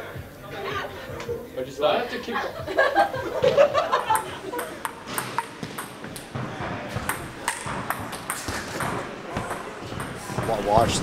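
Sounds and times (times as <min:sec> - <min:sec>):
voices and laughter: 0:00.5 - 0:05.0
table tennis ball clicking: 0:04.2 - 0:06.3, 0:07.0 - 0:10.7.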